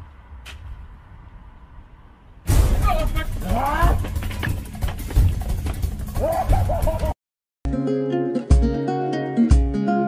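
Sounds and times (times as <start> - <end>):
sharp footfalls of people running: 2.9 - 7.1
plucked acoustic guitar music: 7.7 - 10.0.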